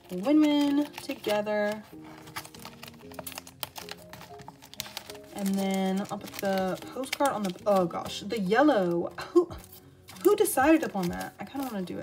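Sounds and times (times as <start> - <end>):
plastic sleeves clicking and rustling: 0.0 - 12.0
soft background music: 0.0 - 12.0.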